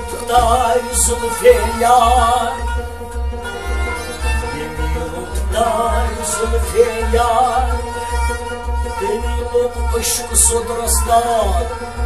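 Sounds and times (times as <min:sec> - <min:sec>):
instrumental accompaniment: 0:00.0 - 0:12.0
steady low drum beat: 0:00.0 - 0:12.0
man singing wavering note: 0:03.4 - 0:08.1.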